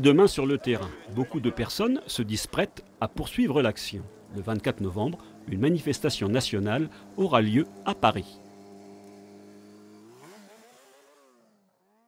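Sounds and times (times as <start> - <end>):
faint motor revving: 0.1 - 12.0.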